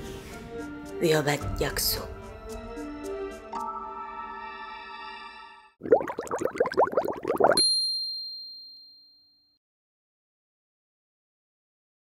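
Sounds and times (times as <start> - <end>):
high bell-like ding: 7.6 - 9.5.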